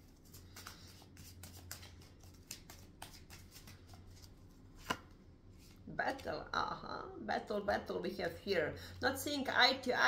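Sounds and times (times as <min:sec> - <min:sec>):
cards shuffling: 0:00.0 - 0:05.8.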